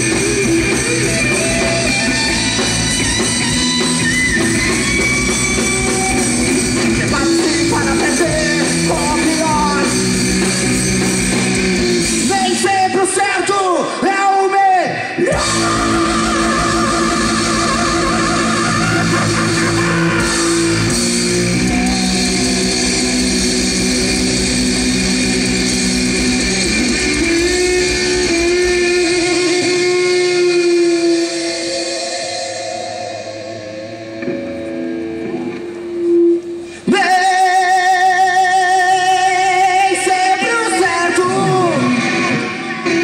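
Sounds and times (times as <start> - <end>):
rock band playing live: 0.0 - 43.0.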